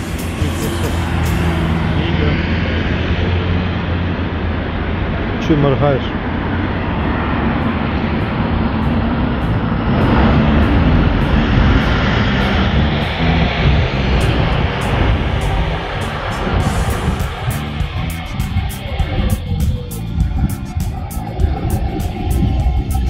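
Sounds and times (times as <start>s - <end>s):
strummed guitar music: 0.0s - 2.6s, 7.2s - 23.0s
city traffic rumble: 0.0s - 23.0s.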